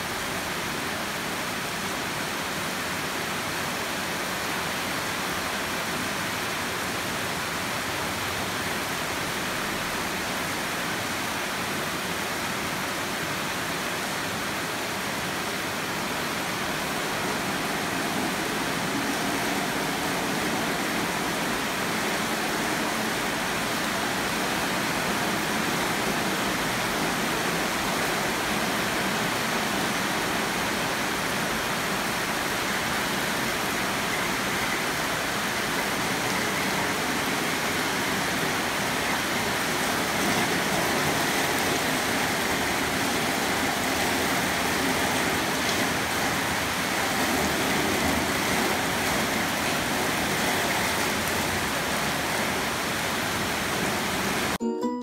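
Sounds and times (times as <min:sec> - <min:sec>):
rain on roofs and trees: 0:00.0 - 0:54.6.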